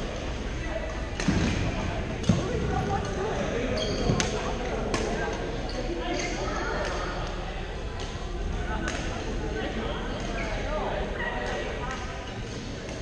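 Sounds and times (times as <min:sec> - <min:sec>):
murmur of voices in echoing hall: 0:00.0 - 0:13.0
shoes squeaking on gym floor: 0:03.7 - 0:04.4.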